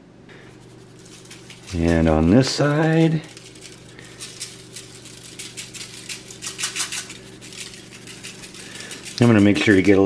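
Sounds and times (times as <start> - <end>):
steady low hum: 0.0 - 10.0
dry rub grains pattering on foil: 0.4 - 10.0.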